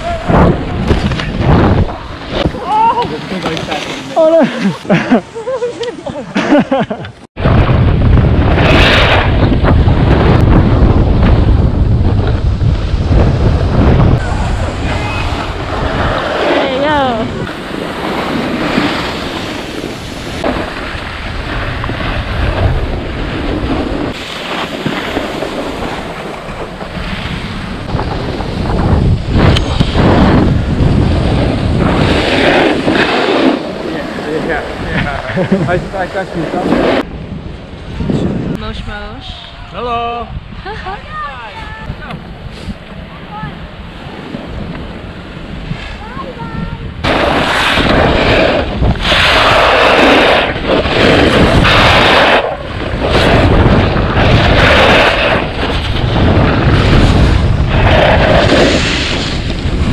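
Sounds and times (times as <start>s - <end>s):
wind buffeting microphone: 0.0s - 6.0s, 7.2s - 59.9s
skis scraping on packed snow: 2.2s - 5.9s, 15.8s - 27.6s, 31.0s - 37.1s, 47.1s - 53.6s, 54.2s - 59.9s.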